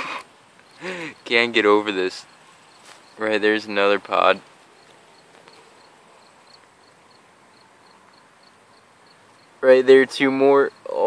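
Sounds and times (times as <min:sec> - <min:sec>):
cricket chirping faintly: 0:00.0 - 0:11.0.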